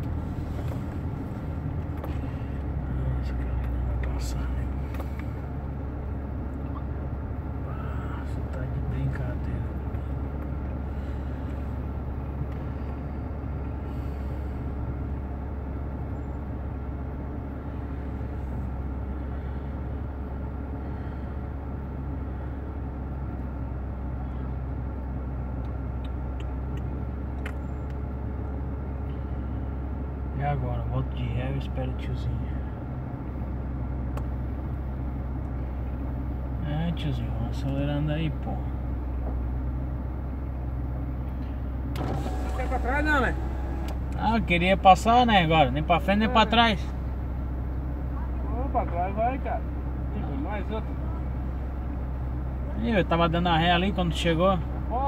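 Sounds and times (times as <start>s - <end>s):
car engine running: 0.0s - 55.0s.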